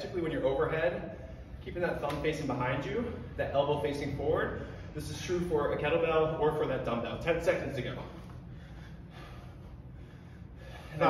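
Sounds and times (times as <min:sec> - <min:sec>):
low steady hum: 0:00.0 - 0:11.0
heavy breathing from exertion: 0:01.0 - 0:01.6, 0:04.5 - 0:05.2, 0:08.0 - 0:11.0.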